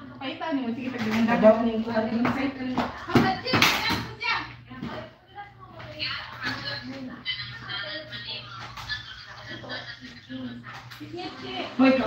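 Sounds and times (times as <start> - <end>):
household chatter: 0.0 - 12.0.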